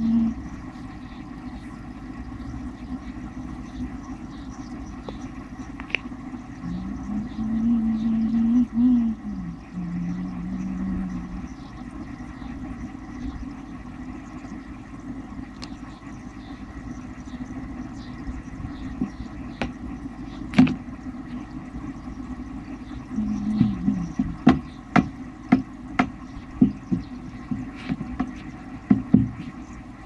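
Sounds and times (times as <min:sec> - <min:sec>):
aquarium air pump humming: 0:00.0 - 0:30.0
wavering pitched tone: 0:06.5 - 0:12.8, 0:23.1 - 0:24.5.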